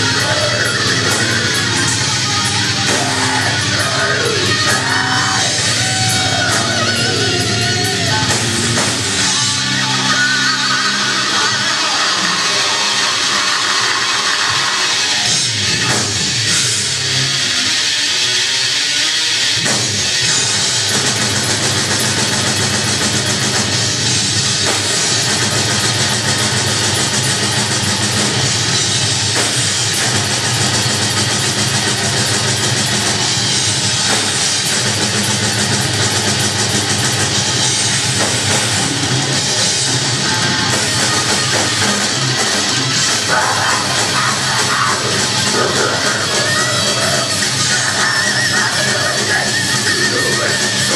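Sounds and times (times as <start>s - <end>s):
live metal band playing: 0.0s - 50.9s.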